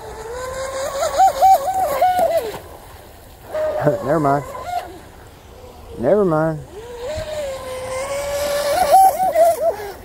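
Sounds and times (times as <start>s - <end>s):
electric boat motor whine: 0.0s - 10.0s.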